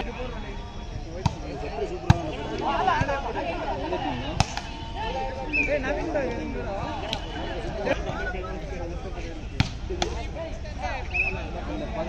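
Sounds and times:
chatter of people: 0.0 - 12.0
volleyball smack: 4.4 - 4.8.

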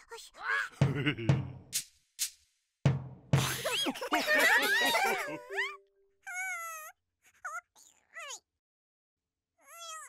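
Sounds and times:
cartoon character squeaking: 5.5 - 8.4, 9.6 - 10.0.

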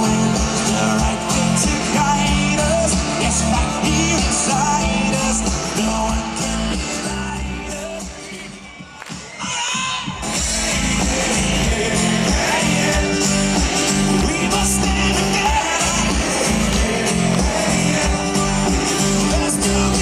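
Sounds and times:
person singing: 0.0 - 8.8, 9.4 - 20.0
live rock band playing: 0.0 - 8.9, 10.1 - 20.0.

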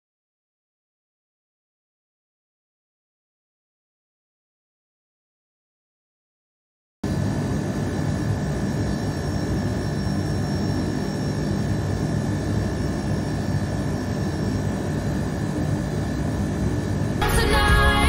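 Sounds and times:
faint high whine: 7.0 - 18.0.

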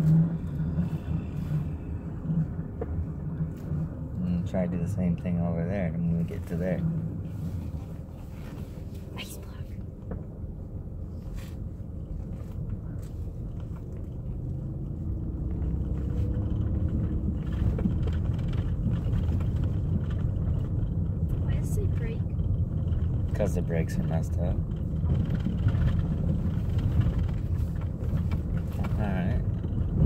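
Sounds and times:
van engine and tyre rumble: 0.0 - 30.0.

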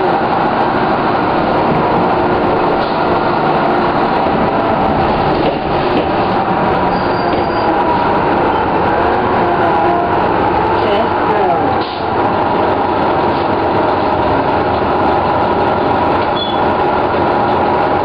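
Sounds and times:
bus diesel engine running: 0.0 - 18.0.

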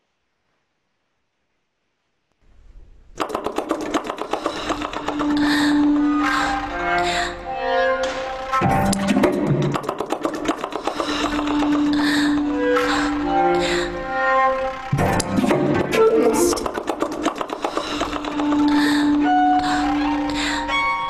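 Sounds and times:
contemporary chamber music: 3.2 - 21.0.

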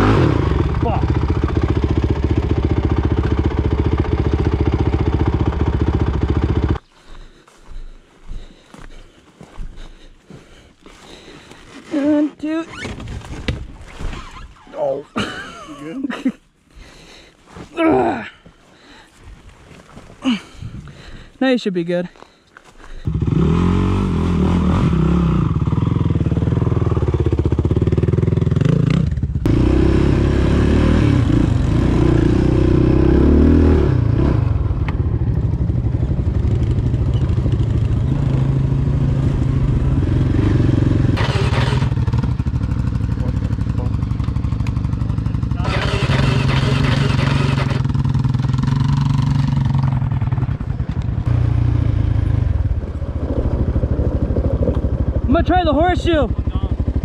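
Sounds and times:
quad bike engine running: 0.0 - 6.9, 23.0 - 57.0.

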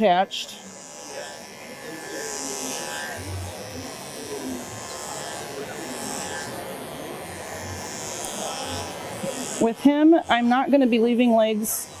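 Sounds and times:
electric clipper running: 0.0 - 12.0.

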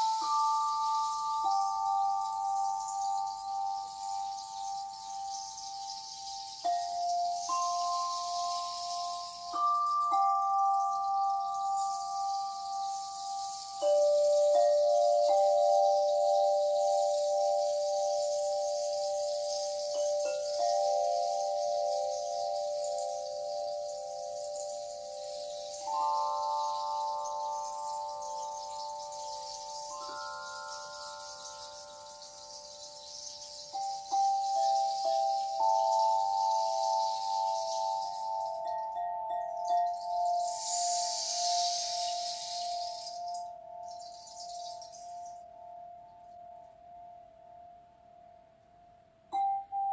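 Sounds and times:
rain stick hiss: 0.0 - 46.6
metal singing bowls ringing: 0.0 - 47.9, 49.3 - 49.9.

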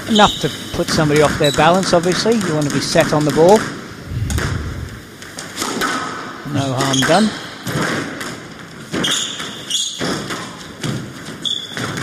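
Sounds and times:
low dull thump: 4.0 - 5.1.

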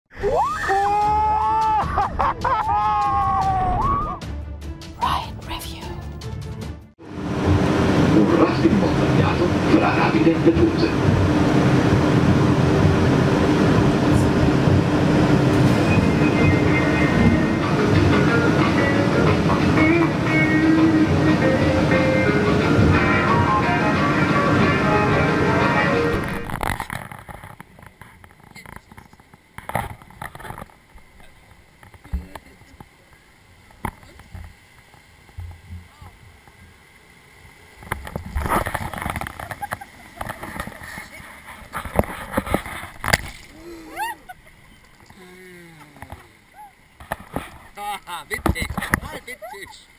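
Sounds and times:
background music: 0.8 - 9.0, 15.6 - 26.5
rushing water: 7.0 - 49.9
quiet water movement: 26.2 - 49.9.

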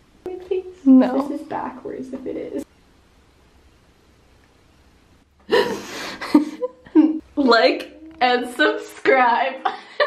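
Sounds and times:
woman gasping laugh: 5.5 - 7.2.

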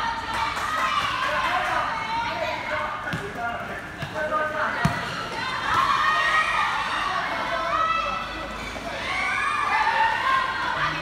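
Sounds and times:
ball thudding on hard court: 4.8 - 5.8.

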